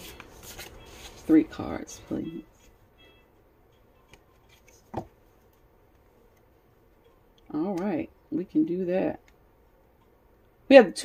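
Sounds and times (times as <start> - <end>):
cards rustling: 0.0 - 1.6, 4.1 - 5.6.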